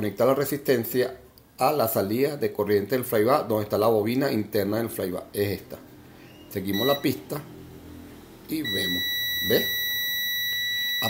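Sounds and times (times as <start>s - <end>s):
multimeter high-pitched beep: 6.7s - 7.2s, 8.5s - 11.0s.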